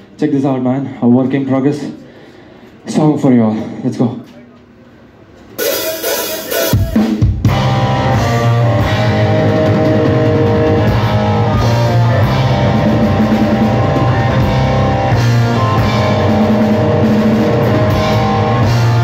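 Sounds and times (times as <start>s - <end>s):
live metal band playing: 5.6s - 19.0s
loud opening band hit: 5.6s - 19.0s.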